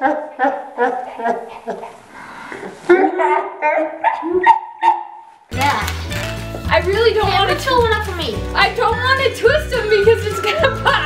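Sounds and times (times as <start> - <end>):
woman laughing: 0.0 - 1.9.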